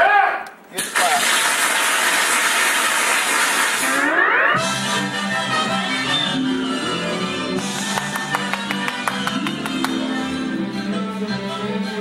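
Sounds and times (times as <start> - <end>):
audience clapping: 0.8 - 4.1, 7.6 - 10.3.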